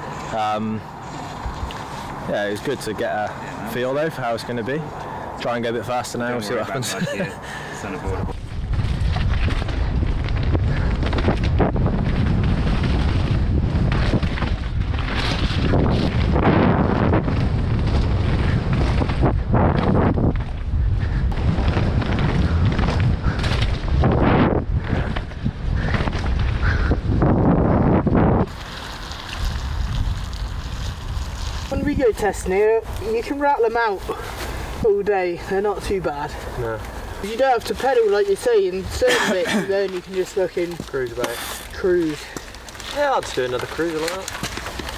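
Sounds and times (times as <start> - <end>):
wind noise on microphone: 6.8 - 35.1
bike knocking and rattling: 8.3 - 34.5, 35.8 - 44.9.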